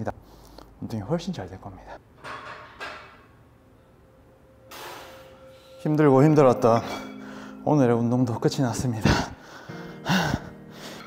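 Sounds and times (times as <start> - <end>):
man laughing breathily: 9.0 - 11.0
man breathing out hard: 9.4 - 11.0.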